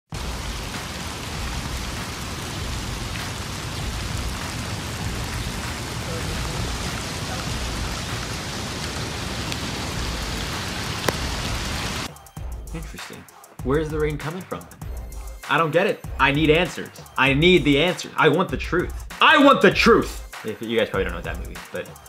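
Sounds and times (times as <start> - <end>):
rain on pavement and grass: 0.1 - 12.1.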